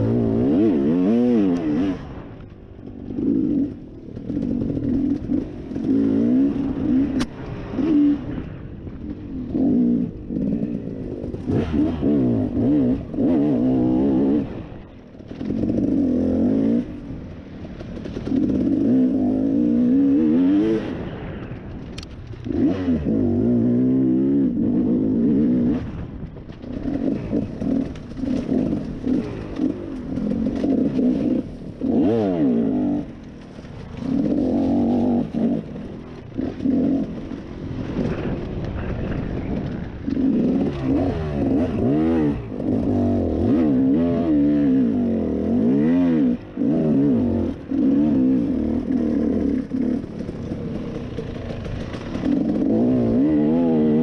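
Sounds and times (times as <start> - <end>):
dirt bike engine revving: 0.0 - 2.2, 2.9 - 8.6, 9.2 - 21.4, 22.5 - 54.0.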